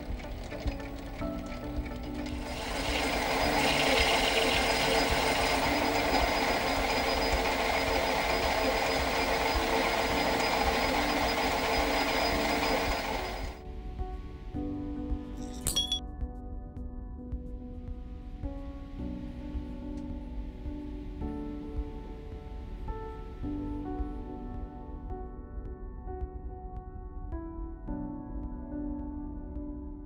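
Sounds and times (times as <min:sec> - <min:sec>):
metal lathe cutting brass: 0:00.0 - 0:13.6
soft background music: 0:00.0 - 0:30.0.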